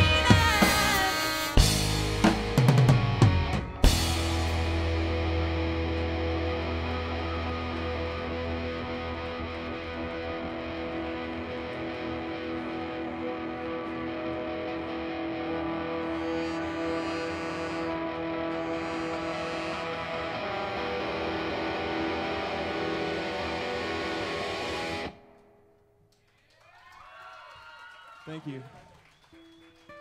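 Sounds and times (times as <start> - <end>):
ska rock band playing: 0.0 - 25.2.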